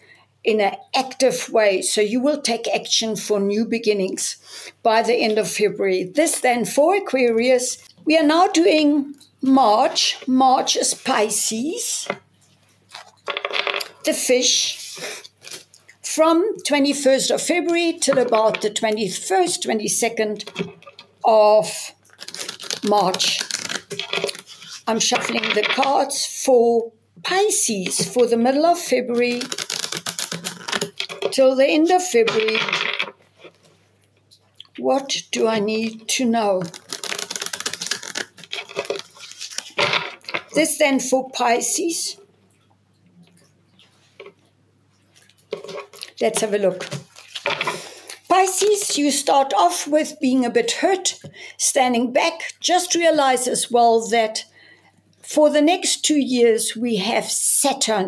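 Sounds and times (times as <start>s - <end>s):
cards shuffling: 22.1s - 25.9s, 29.1s - 31.4s, 36.6s - 40.6s, 45.4s - 47.9s.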